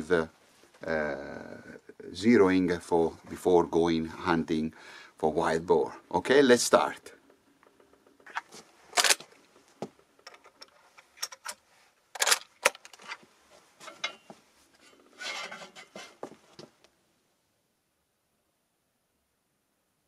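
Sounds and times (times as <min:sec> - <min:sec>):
rifle metallic clicks and scrapes: 0:07.7 - 0:09.4, 0:10.2 - 0:13.2, 0:14.8 - 0:16.3.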